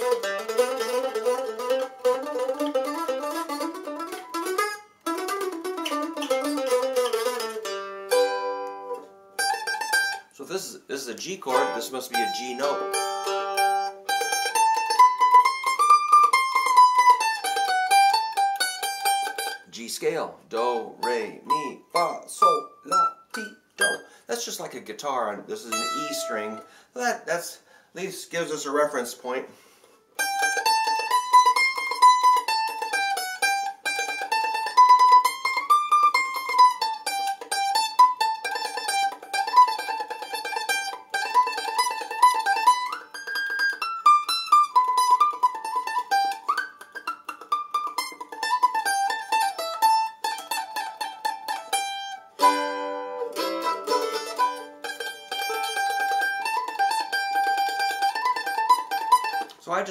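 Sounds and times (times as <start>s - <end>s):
mandolin picked rapidly: 0.0s - 29.4s, 30.1s - 59.9s.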